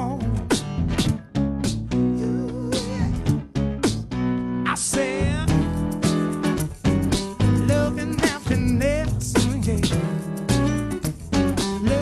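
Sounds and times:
layered acoustic guitar: 0.0 - 12.0.

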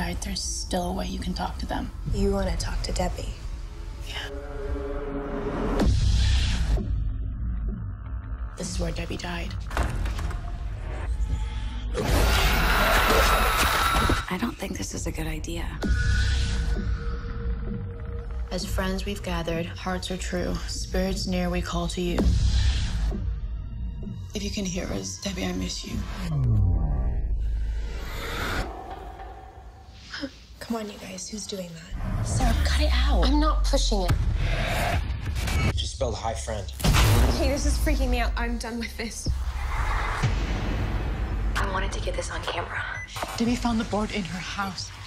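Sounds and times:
low rumbling drone: 15.5 - 30.5.

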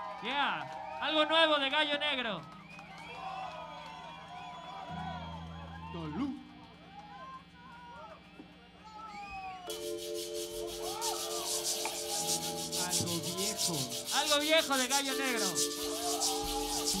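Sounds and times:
held keyboard chord: 9.7 - 17.0
scratchy percussion rhythm: 9.7 - 17.0
sliding warbling tones: 9.7 - 17.0.

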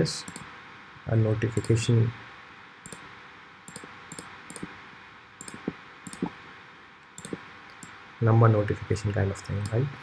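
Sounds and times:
faint steady hiss: 0.0 - 10.0
computer mouse clicks: 0.3 - 0.5, 1.6 - 1.8, 2.8 - 3.1, 3.7 - 4.7, 5.4 - 6.3, 7.0 - 8.0, 9.6 - 9.8.

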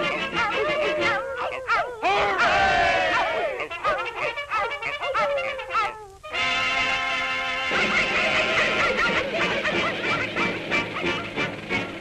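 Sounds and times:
cartoon hounds baying and howling: 0.0 - 6.2, 7.9 - 11.6.

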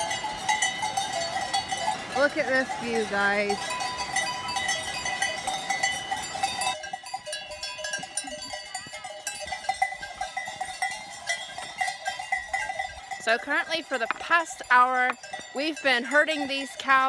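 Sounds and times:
cowbells clanking: 0.0 - 17.0.

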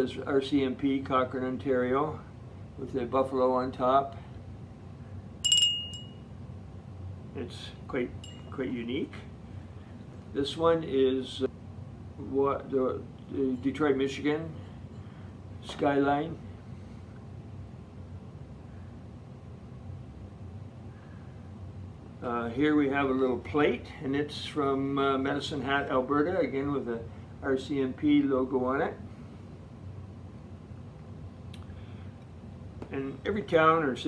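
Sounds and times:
low room hum: 0.0 - 34.0
small ceramic bell ringing: 5.4 - 6.3, 8.2 - 8.6.

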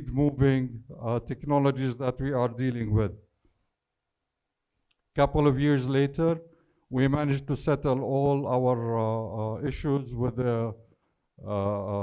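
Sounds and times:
man's voice: 0.0 - 3.2, 5.2 - 10.8, 11.4 - 12.0.

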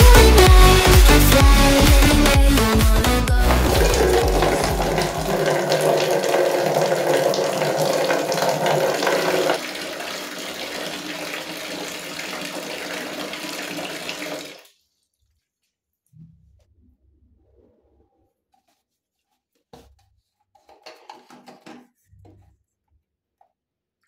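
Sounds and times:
tap water running into bucket: 3.4 - 14.7.

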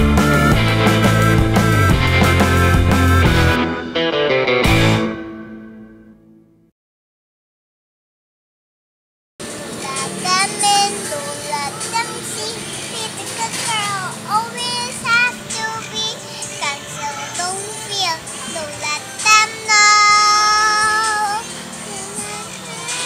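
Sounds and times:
young girl singing: 9.6 - 23.0.

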